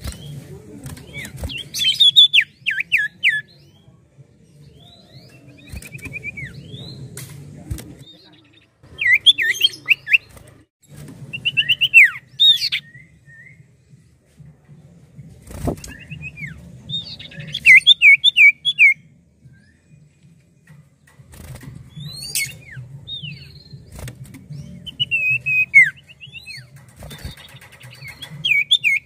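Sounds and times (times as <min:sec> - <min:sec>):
bird whistling song: 0:01.1 - 0:03.8, 0:04.8 - 0:07.1, 0:08.0 - 0:10.3, 0:11.3 - 0:13.7, 0:15.8 - 0:19.9, 0:21.9 - 0:29.0
bird trill: 0:15.9 - 0:19.0, 0:21.9 - 0:29.0.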